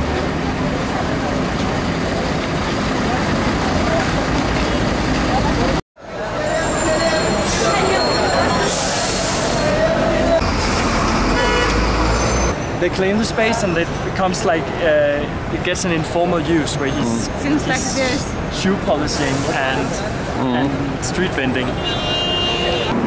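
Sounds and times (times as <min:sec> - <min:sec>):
people's voices: 0:00.0 - 0:10.8, 0:12.8 - 0:21.9
road traffic: 0:00.0 - 0:23.0.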